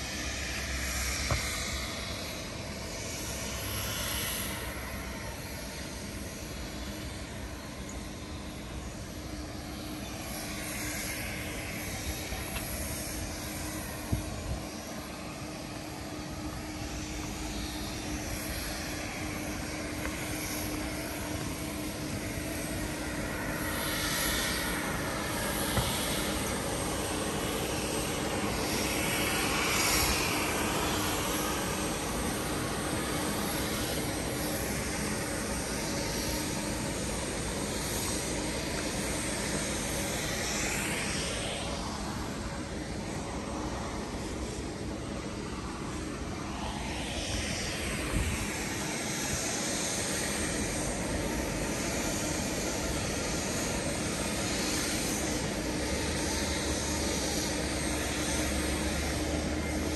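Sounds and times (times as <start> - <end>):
jet engines droning: 0.0 - 59.9.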